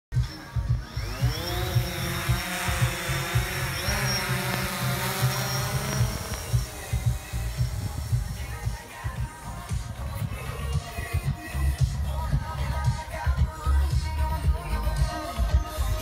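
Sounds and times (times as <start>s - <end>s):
music with steady beat: 0.1s - 16.0s
drone motors whining: 0.2s - 16.0s.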